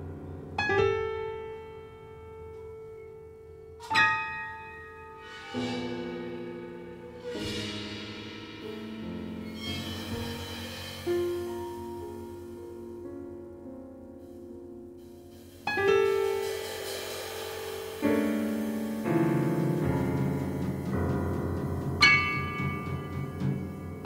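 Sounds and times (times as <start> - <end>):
slow piano music: 0.0 - 24.0.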